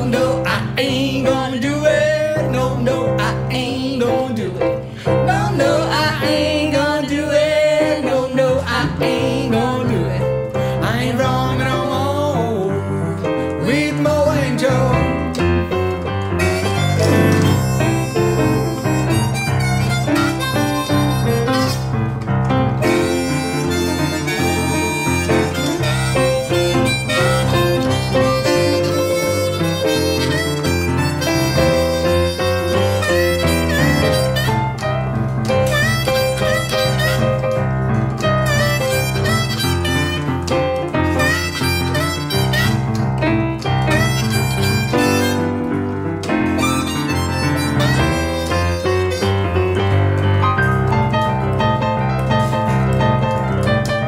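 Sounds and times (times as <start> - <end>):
boogie-woogie piano: 0.0 - 54.0
blues harmonica solo: 16.0 - 51.2.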